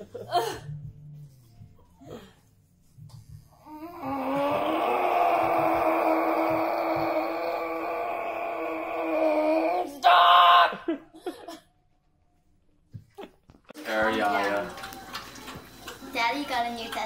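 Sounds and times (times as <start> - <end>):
woman wailing in pain: 3.7 - 11.0.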